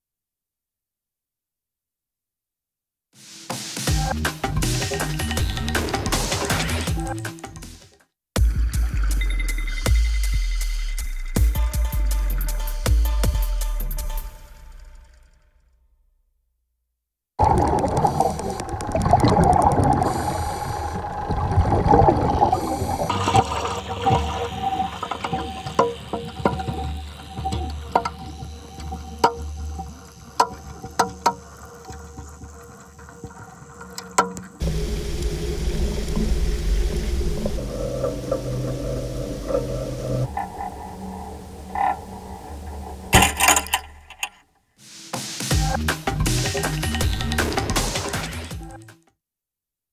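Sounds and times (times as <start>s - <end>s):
sharp clicks and creaks: 17.4s - 22.3s, 24.1s - 34.6s, 37.4s - 44.4s, 45.8s - 48.9s
low rumble: 17.4s - 24.0s, 34.6s - 43.2s
water bubbling: 17.4s - 44.2s
held drone tones: 17.4s - 44.3s.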